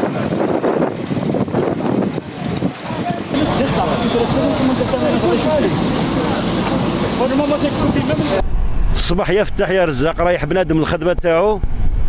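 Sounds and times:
fire crackling and rushing: 0.0s - 9.6s
faint voices: 2.2s - 8.4s
low rumble: 5.7s - 12.0s.

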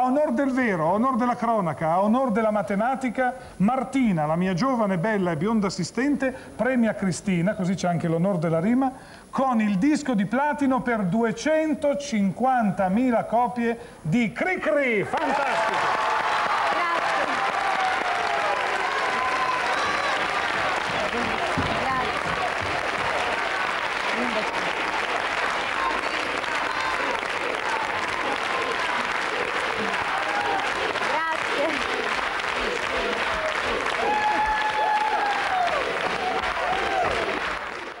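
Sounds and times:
audience applauding: 15.1s - 38.0s
children shouting and cheering: 15.2s - 23.8s, 24.5s - 38.0s.

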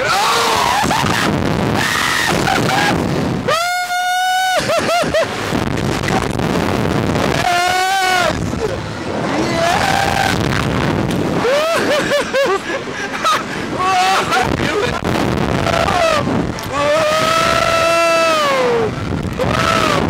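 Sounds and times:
people screaming: 0.0s - 5.3s, 7.2s - 10.6s, 11.4s - 12.5s, 13.7s - 20.0s
wind rushing over microphone: 0.0s - 20.0s
people laughing: 4.5s - 5.4s, 11.4s - 15.0s.

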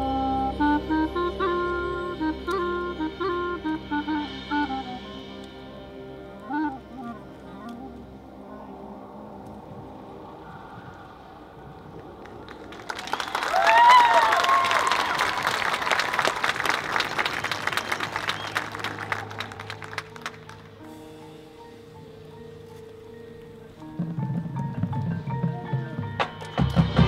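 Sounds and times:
marching band chords: 0.0s - 10.0s, 14.8s - 27.0s
audience clapping and cheering: 12.0s - 20.8s.

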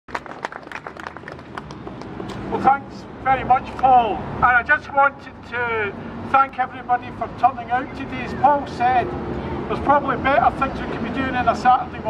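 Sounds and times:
crowd applauding: 0.1s - 2.2s.

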